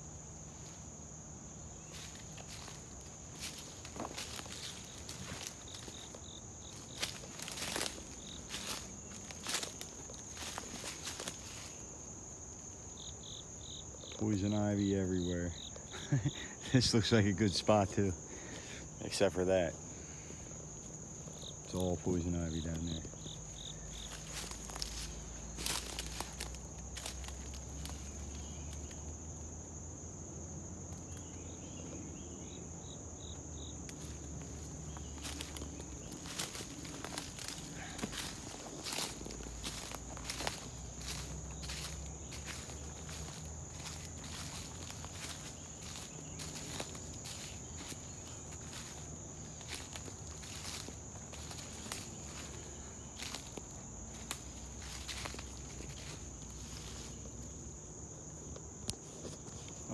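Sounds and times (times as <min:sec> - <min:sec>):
high-pitched insect chorus: 0:00.0 - 0:59.9
footsteps crunching dry leaves: 0:00.3 - 0:13.6, 0:20.6 - 0:29.8, 0:33.5 - 0:57.8.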